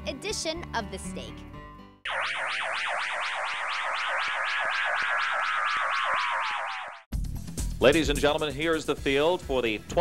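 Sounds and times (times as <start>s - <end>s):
synthesized warbling tone: 2.1s - 7.1s.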